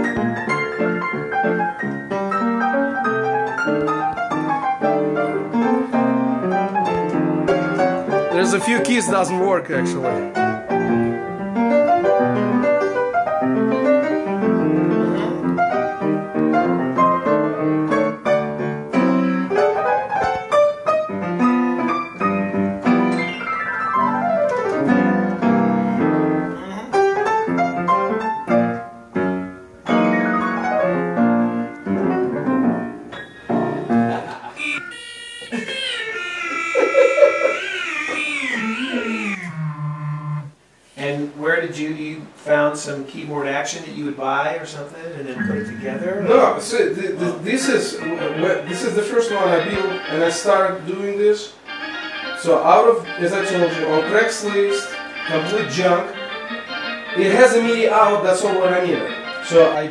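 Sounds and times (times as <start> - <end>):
piano runs and chords: 0.0 - 34.4, 45.4 - 50.8
sliding wavering tones: 45.4 - 46.8.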